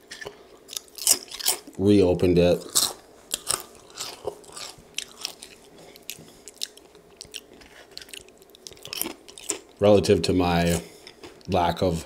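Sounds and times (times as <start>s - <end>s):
person chewing food: 0.0s - 1.8s, 2.6s - 9.8s, 10.7s - 11.5s.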